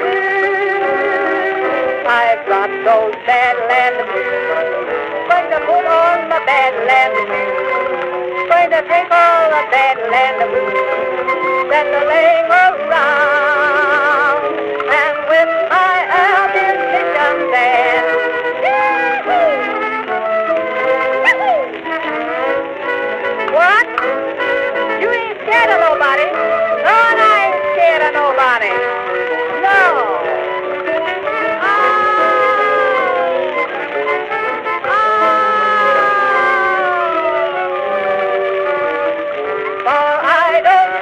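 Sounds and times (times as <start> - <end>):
jazz band playing blues: 0.0 - 41.0.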